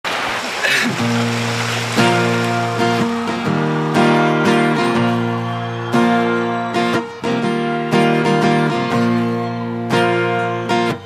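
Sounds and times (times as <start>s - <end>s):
acoustic guitar strumming chords: 1.0s - 11.0s.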